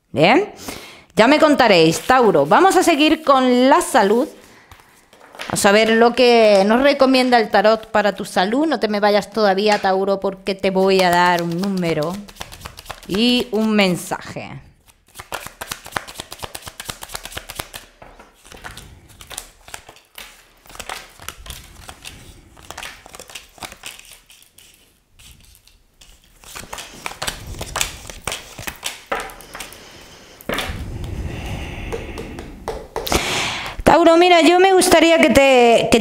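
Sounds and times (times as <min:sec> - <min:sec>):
cards being shuffled: 0:09.3 - 0:14.1, 0:14.8 - 0:31.2.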